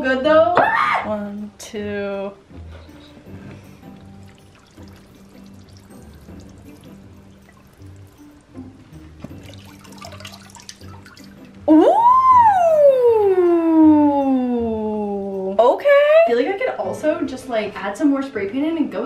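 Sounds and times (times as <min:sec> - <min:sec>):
quiet background music: 0:00.0 - 0:19.0
water pouring and dripping: 0:03.2 - 0:12.0.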